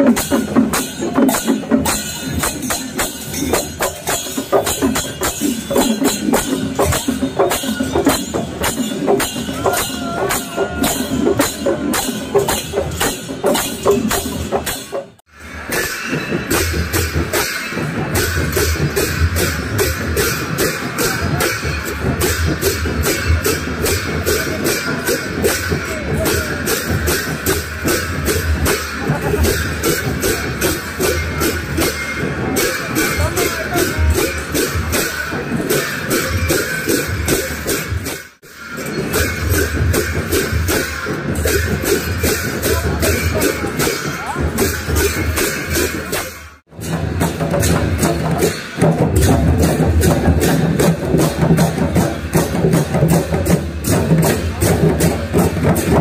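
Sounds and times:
barrel drums beating: 0.0s - 56.0s
crowd noise: 0.0s - 56.0s
hand cymbals clashing: 0.0s - 56.0s.

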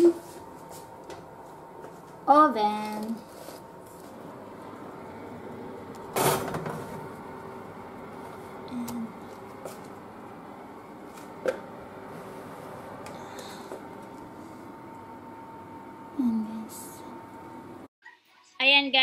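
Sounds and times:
background hum: 0.0s - 17.9s.

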